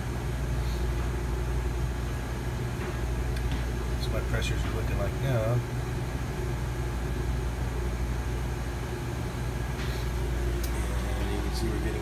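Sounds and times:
refrigeration compressor humming: 0.0s - 12.0s.

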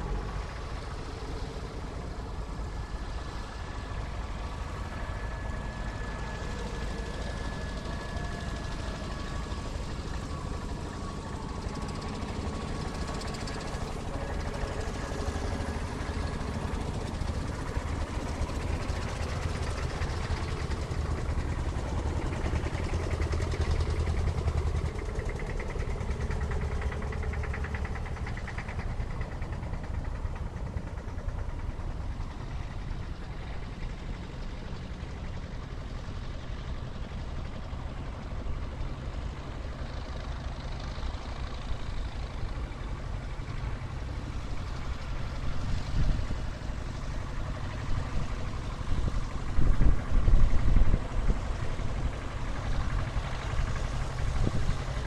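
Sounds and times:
tractor engines throbbing: 0.0s - 55.0s.

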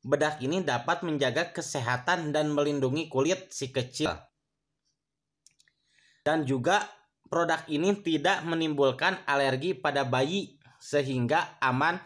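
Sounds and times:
person speaking: 6.3s - 12.0s.

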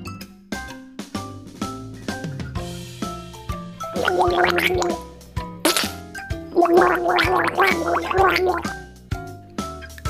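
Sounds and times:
light background music: 0.0s - 10.0s
cartoon toothbrushing gargle: 3.9s - 5.0s, 5.7s - 8.8s.

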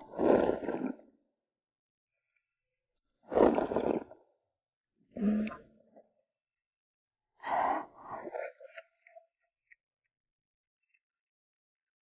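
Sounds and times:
person slurping porridge: 0.0s - 1.1s, 3.3s - 4.3s.

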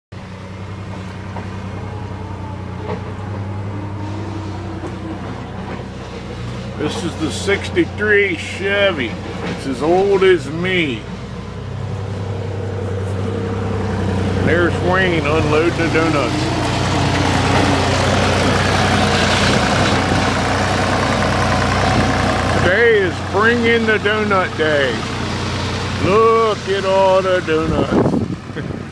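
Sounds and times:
pickup engine running: 0.1s - 28.9s.

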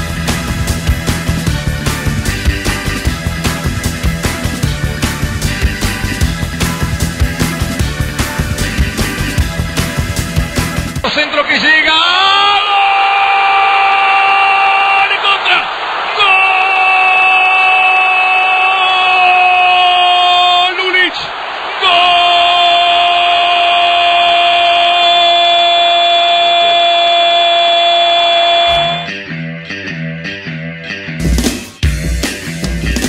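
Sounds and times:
crowd noise: 1.7s - 26.9s, 27.6s - 29.2s
commentator shouting: 11.0s - 29.1s.

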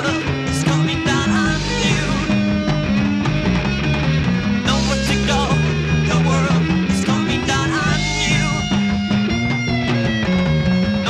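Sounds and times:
rock band playing: 0.0s - 11.0s
wavering bending guitar line: 0.0s - 11.0s.

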